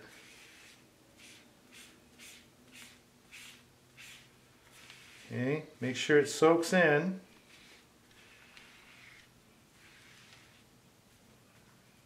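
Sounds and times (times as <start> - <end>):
foam brush swishing on paper: 0.0 - 5.4, 7.4 - 10.7.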